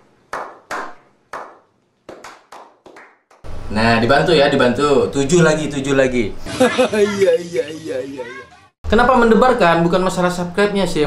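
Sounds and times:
sharp hand claps: 0:00.3 - 0:03.5.

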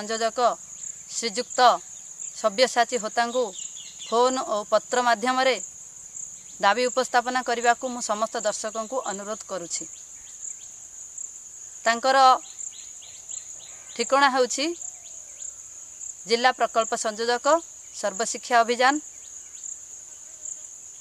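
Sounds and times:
crickets trilling: 0:00.0 - 0:21.0
person talking: 0:06.6 - 0:09.9.

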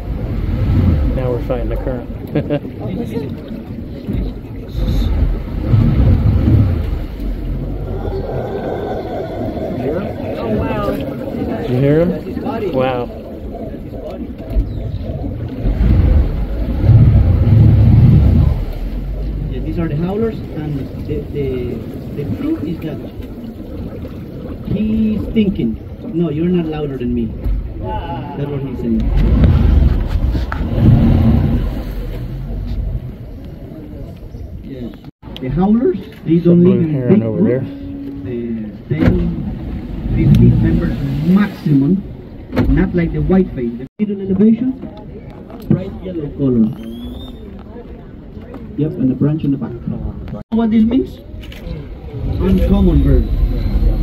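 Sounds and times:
outboard motor droning: 0:00.0 - 0:34.6, 0:36.4 - 0:43.8
howler monkeys roaring: 0:07.4 - 0:19.4
people's voices: 0:07.5 - 0:16.1, 0:24.6 - 0:54.0.

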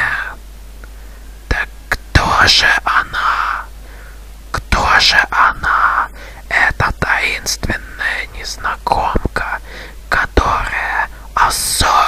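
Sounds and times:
person whispering: 0:00.0 - 0:00.4, 0:01.5 - 0:03.7, 0:04.5 - 0:12.0.

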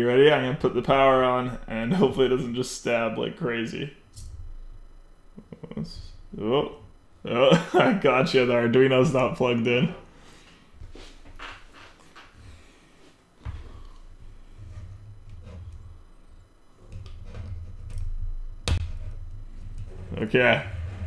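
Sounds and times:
low rumble: 0:03.9 - 0:07.8, 0:13.6 - 0:21.0.

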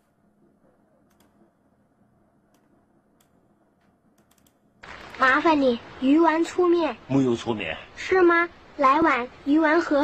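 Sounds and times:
keyboard and mouse clicks: 0:01.1 - 0:01.4, 0:02.5 - 0:05.2.

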